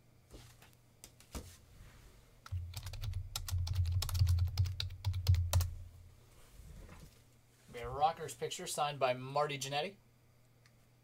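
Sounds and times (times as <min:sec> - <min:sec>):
keyboard keys clicking: 0:02.5 - 0:05.7.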